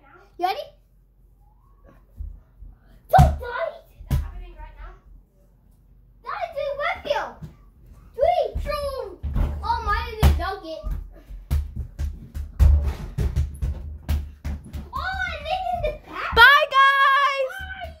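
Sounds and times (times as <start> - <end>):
knocks and thumps: 8.5 - 16.6.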